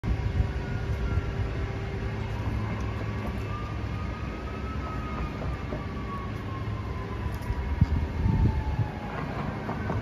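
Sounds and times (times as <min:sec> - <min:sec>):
rumble of passing cars: 0:00.0 - 0:10.0.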